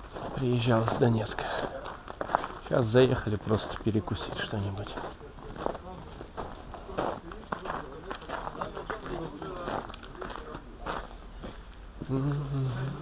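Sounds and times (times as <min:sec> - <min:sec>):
indistinct background voices: 0:00.0 - 0:13.0.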